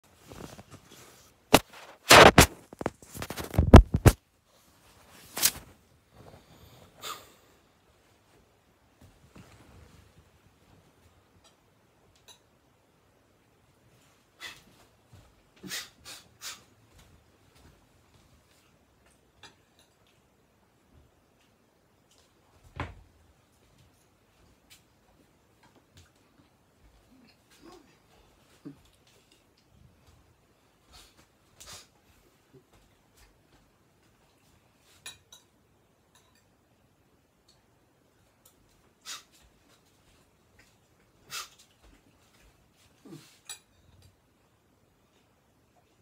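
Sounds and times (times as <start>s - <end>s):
person moving about: 0.0s - 11.1s.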